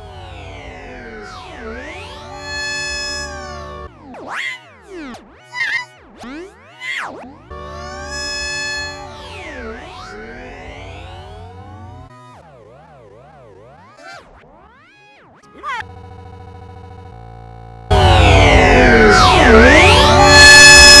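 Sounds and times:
synthesizer tones sweeping in pitch: 0:00.0 - 0:21.0.

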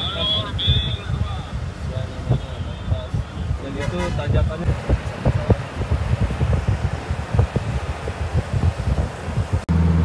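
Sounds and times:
car road noise: 0:00.0 - 0:10.0
wind buffeting microphone: 0:00.0 - 0:10.0
bus engine hum: 0:02.9 - 0:10.0.

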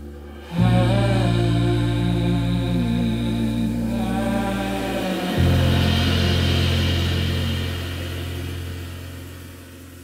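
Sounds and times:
band's low held note: 0:00.0 - 0:10.0
cymbal wash hiss: 0:00.0 - 0:10.0.

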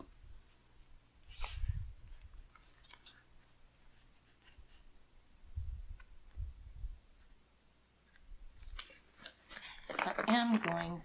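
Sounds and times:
woman speaking: 0:10.0 - 0:11.0.

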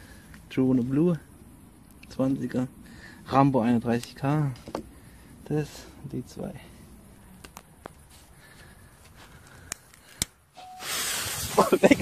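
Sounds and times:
firecracker fuse fizzing: 0:10.6 - 0:12.0.

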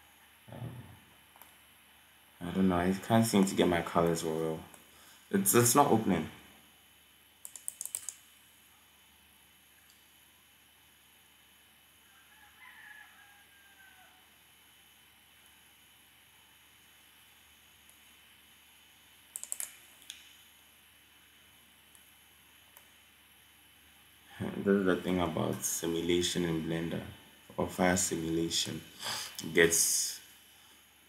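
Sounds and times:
faint room hiss: 0:00.0 - 0:31.0
keyboard and mouse clicks: 0:01.3 - 0:01.6, 0:07.4 - 0:08.2, 0:19.3 - 0:20.3.

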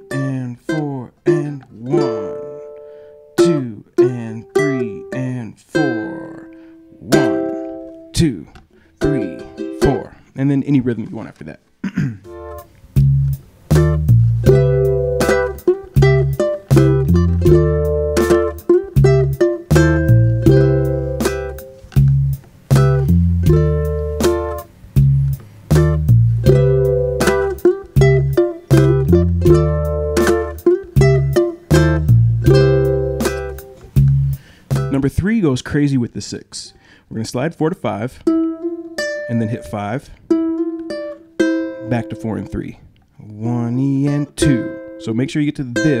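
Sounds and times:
ukulele playing chords: 0:00.0 - 0:11.0, 0:12.3 - 0:35.1, 0:38.2 - 0:42.8, 0:43.6 - 0:46.0
backing track with bass and drums: 0:12.1 - 0:35.2.

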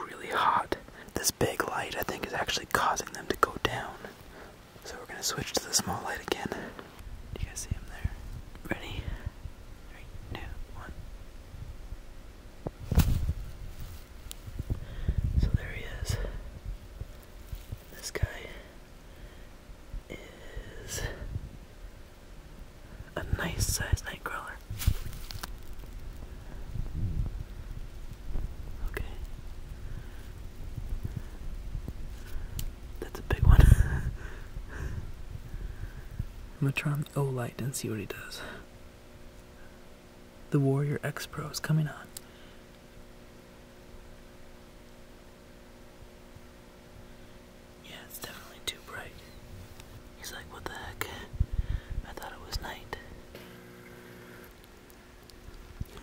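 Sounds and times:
man whispering: 0:00.0 - 0:11.0, 0:15.3 - 0:16.6, 0:17.8 - 0:18.8, 0:20.0 - 0:21.4, 0:23.0 - 0:24.7, 0:28.7 - 0:29.4, 0:33.0 - 0:34.5, 0:36.6 - 0:38.7, 0:40.5 - 0:42.2, 0:47.8 - 0:49.4, 0:50.2 - 0:51.4, 0:52.0 - 0:53.1
rustling: 0:12.7 - 0:15.5, 0:17.0 - 0:18.0, 0:24.4 - 0:32.6.

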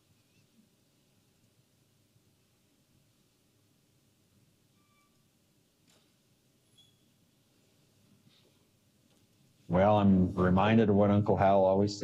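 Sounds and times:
brief faint tone: 0:04.8 - 0:05.2.

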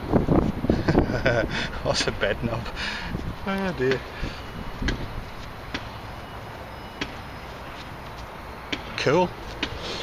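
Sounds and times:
sharp knocks: 0:04.8 - 0:05.1.

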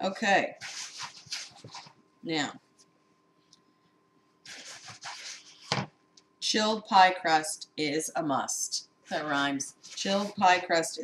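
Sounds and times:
hands rubbing dough in bowl: 0:00.5 - 0:01.9, 0:04.5 - 0:05.8, 0:09.1 - 0:10.8.

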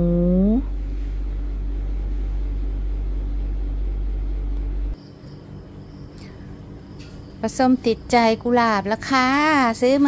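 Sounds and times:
low hum: 0:00.0 - 0:07.1.

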